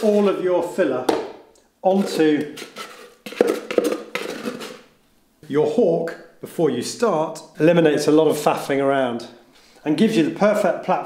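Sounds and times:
trowel scraping plastic tub: 0:01.9 - 0:04.8.

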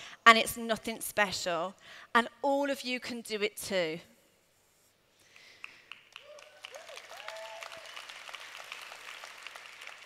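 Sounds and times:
audience applauding: 0:05.6 - 0:10.0.

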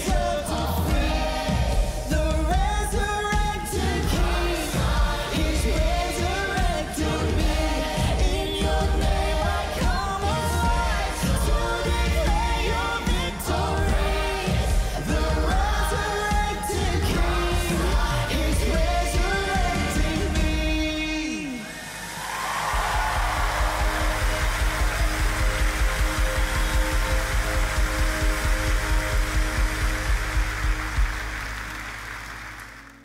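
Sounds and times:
man and woman singing: 0:00.0 - 0:21.8
worship band playing: 0:00.0 - 0:33.0.

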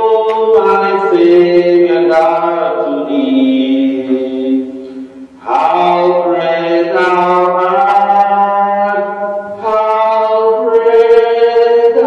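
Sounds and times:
church hymn music: 0:00.0 - 0:12.0.

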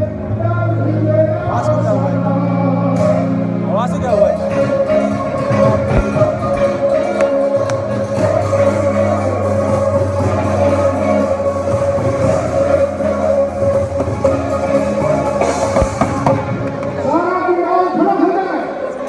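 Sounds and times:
guitar: 0:00.0 - 0:17.1
live band music over pa: 0:00.0 - 0:17.7
drums: 0:04.8 - 0:17.1.

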